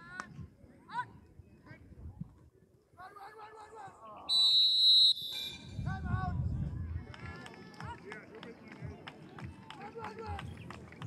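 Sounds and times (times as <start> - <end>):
referee's whistle blast: 4.3 - 5.9.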